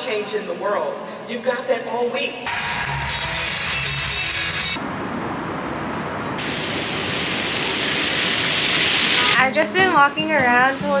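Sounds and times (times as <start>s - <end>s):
fountain water splashing on stone: 6.4s - 9.4s.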